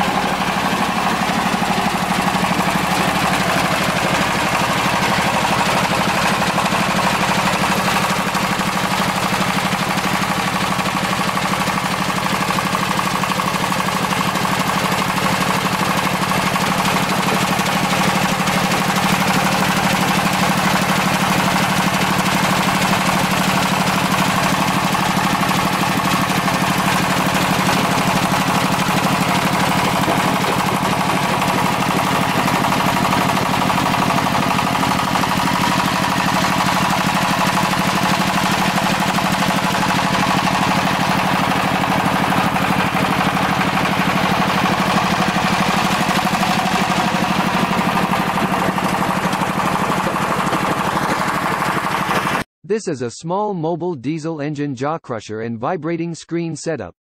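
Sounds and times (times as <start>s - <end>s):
stone crusher machinery running: 0.0s - 52.4s.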